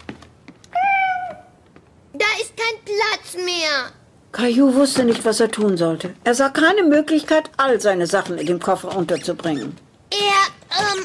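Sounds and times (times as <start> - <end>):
cat meowing: 0.7 - 1.6.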